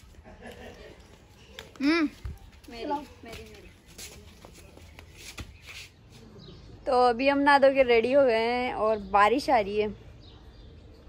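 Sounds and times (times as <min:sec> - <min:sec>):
flip-flop footsteps on dirt: 0:01.5 - 0:05.9.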